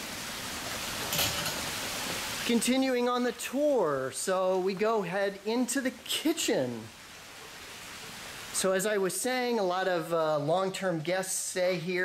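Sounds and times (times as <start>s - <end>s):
fountain water splashing: 0.0s - 11.8s.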